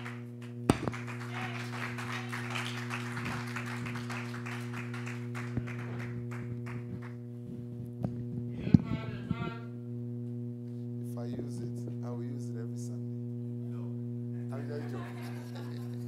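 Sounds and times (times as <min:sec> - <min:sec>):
electrical hum: 0:00.0 - 0:16.0
sharp knock: 0:00.7 - 0:01.0
microphone handling crackle: 0:05.5 - 0:12.3.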